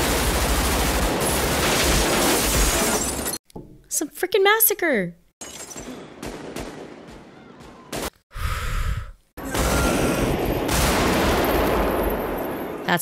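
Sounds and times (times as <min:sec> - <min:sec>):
rifle shots: 0:06.2 - 0:08.1.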